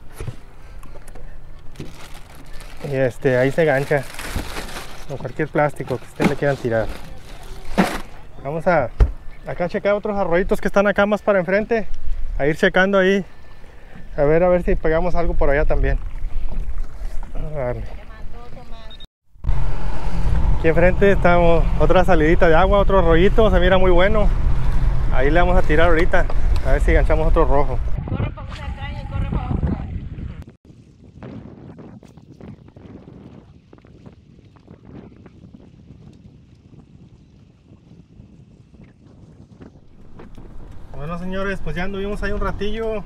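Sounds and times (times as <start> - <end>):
boat engine rumble: 0.0 - 10.6, 13.0 - 28.1
wind rushing over microphone: 19.4 - 43.0.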